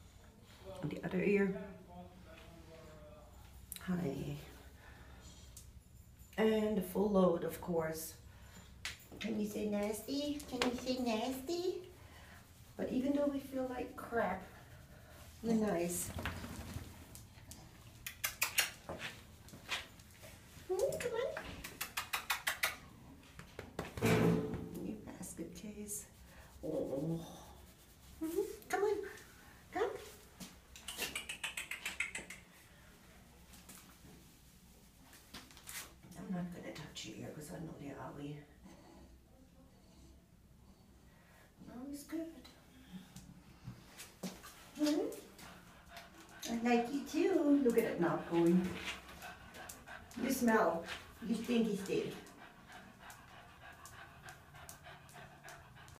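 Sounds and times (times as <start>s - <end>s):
dog claws clicking on tile: 17.9s - 19.1s, 20.8s - 23.9s, 30.7s - 32.5s
dog panting quickly: 44.7s - 56.0s.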